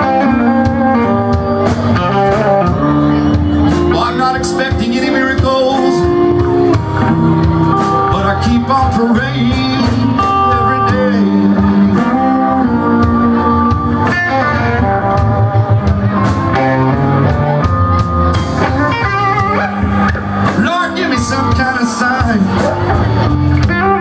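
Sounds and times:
bass and drums: 0.0s - 24.0s
electric guitar lead: 0.0s - 24.0s.

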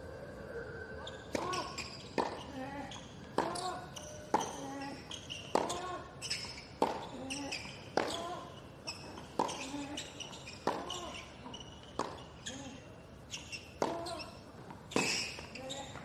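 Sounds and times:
tennis racket hitting ball: 1.3s - 2.4s, 3.3s - 4.7s, 5.4s - 6.0s, 6.8s - 7.3s, 7.9s - 10.0s, 10.6s - 11.2s, 11.9s - 12.3s, 13.8s - 15.6s.

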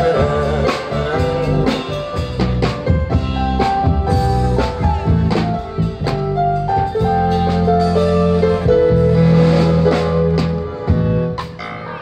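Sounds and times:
drum kit: 0.0s - 12.0s
guitar: 0.0s - 12.0s
live band playing instrumental: 0.0s - 12.0s
low bass line: 0.0s - 12.0s.

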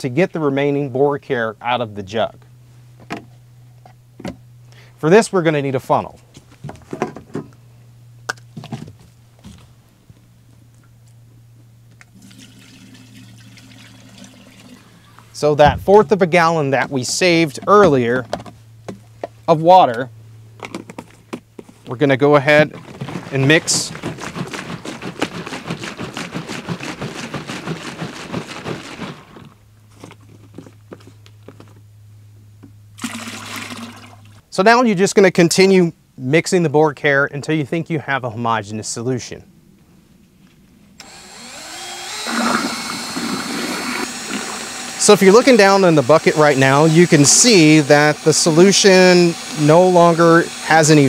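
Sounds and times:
steady low hum: 0.0s - 51.0s
low hum: 7.5s - 21.9s
water pouring through a funnel: 12.2s - 15.2s, 22.8s - 29.5s, 33.0s - 34.4s
liquid sloshing in plastic jug: 22.6s - 30.6s, 33.0s - 34.4s.

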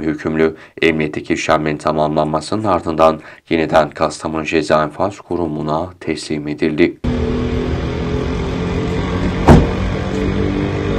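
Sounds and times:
sharp thump: 9.2s - 10.0s.

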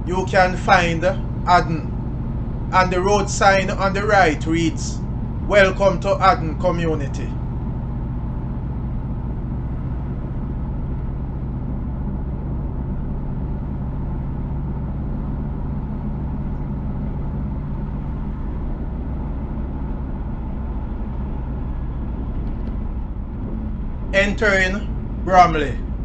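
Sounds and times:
car engine hum: 0.0s - 26.0s.

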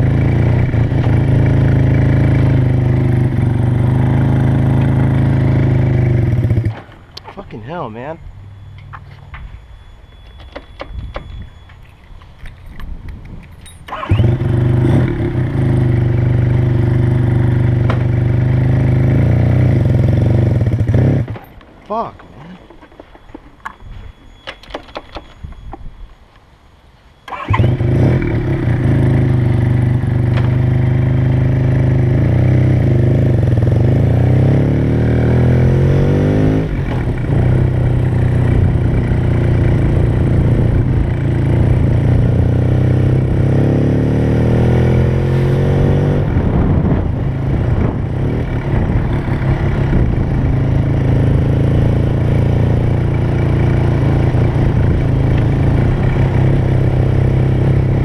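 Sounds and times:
motorcycle engine revving: 0.0s - 9.4s, 13.8s - 21.6s, 27.3s - 58.0s.

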